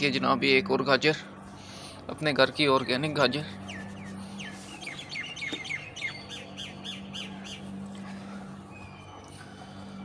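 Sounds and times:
bird chirping: 2.7 - 9.9.

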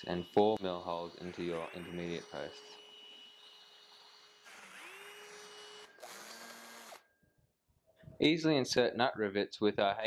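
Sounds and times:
power drill motor whine: 0.0 - 7.1.

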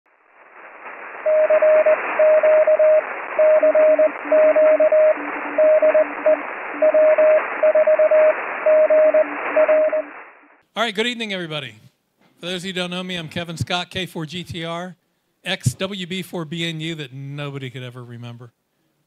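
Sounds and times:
radio static hiss: 0.1 - 10.6
morse code tones: 1.3 - 10.1.

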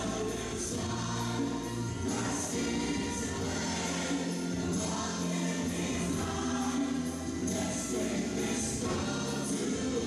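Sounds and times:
gospel choir singing: 0.0 - 10.0
music: 0.0 - 10.0.

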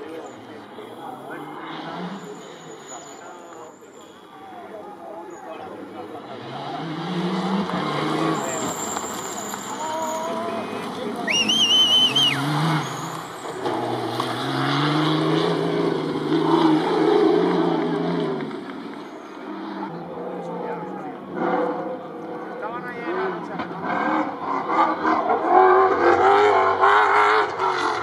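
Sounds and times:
spectators' voices: 0.0 - 26.8
rally car engines accelerating: 0.0 - 28.0
shrill whistle: 11.2 - 13.1.

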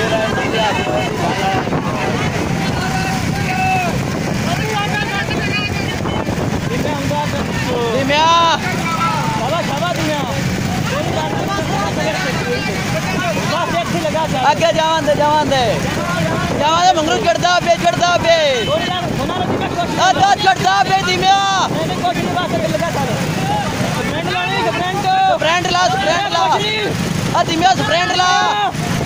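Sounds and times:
wind on microphone: 0.0 - 9.4, 10.3 - 24.2
men shouting: 0.0 - 29.0
small motorcycle engines running: 0.0 - 29.0.

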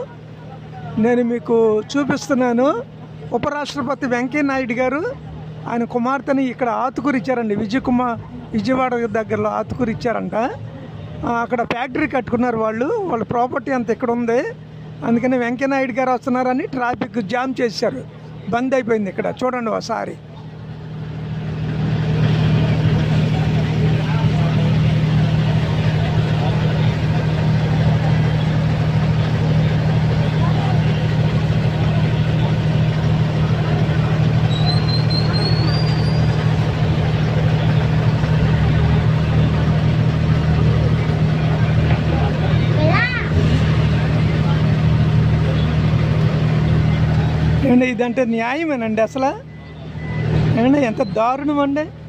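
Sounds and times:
diesel engine idling: 0.0 - 52.0
high rising whistle: 34.4 - 36.4.

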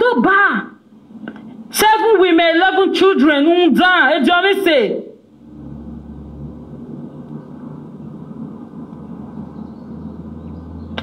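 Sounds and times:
steady low rumble: 5.2 - 11.0.

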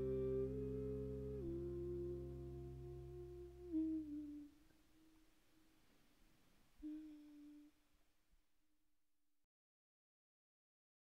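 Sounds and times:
soft steady pitched tone: 0.0 - 5.9.

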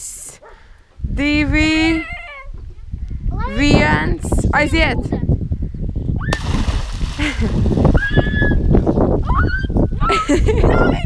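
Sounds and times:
person splashing into water: 6.3 - 8.1.

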